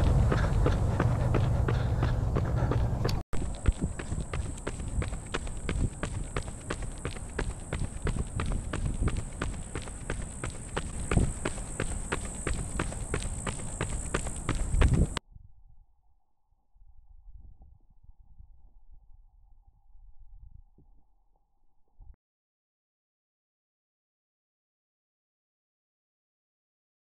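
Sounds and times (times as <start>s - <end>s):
running footsteps on concrete: 0.0s - 15.2s
wind rumble on microphone: 0.0s - 15.9s, 16.7s - 21.1s.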